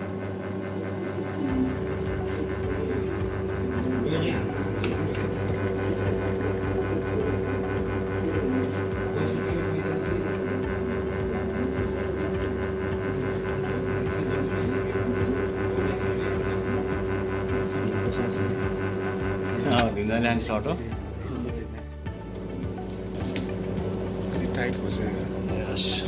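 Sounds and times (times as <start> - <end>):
espresso machine pump humming: 0.0 - 26.0.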